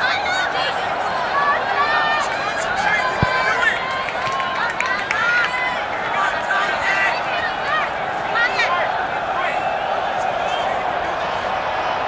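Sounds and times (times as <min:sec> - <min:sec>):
children calling and chattering: 0:00.0 - 0:09.4.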